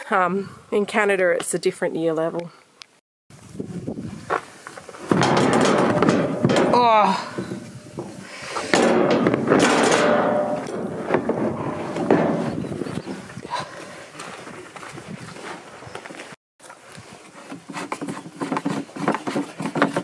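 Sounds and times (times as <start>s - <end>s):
plastic jerry can scraping and bumping: 4.8s - 13.4s, 17.1s - 20.0s.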